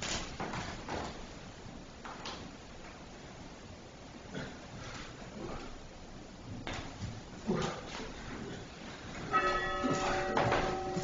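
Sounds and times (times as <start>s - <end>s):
knocks and shuffles on wooden floor: 6.5s - 11.0s
bell ringing: 9.3s - 11.0s.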